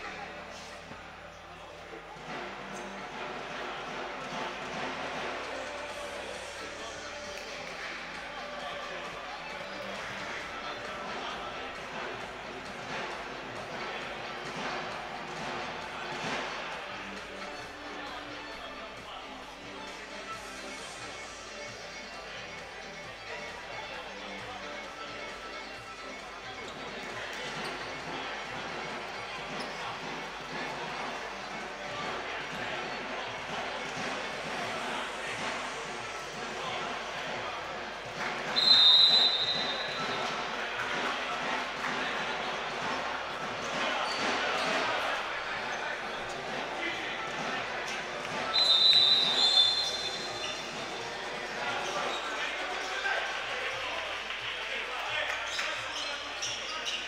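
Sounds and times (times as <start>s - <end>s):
voices in gym hall: 0.0s - 57.0s
referee's whistle blast: 38.5s - 40.2s, 48.4s - 50.4s.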